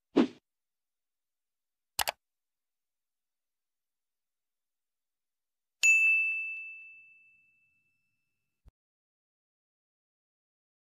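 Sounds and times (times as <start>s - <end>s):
bell ding: 5.8s - 8.2s.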